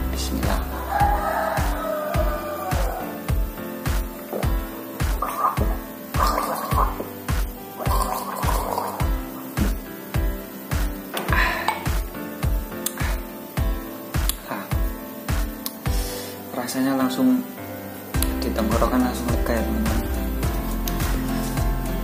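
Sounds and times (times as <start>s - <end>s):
background music with steady beat: 0.0s - 22.0s
man gargling: 5.2s - 7.1s.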